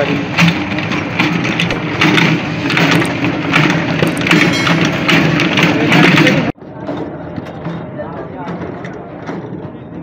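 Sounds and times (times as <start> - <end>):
pestle grinding paste: 0.0 - 6.8
small petrol engine hum: 0.0 - 7.2.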